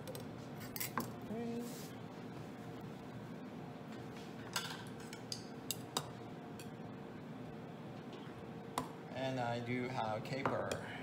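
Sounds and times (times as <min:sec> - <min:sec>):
faint steady hum: 0:00.0 - 0:11.0
utensils clinking against dishes: 0:00.6 - 0:01.1.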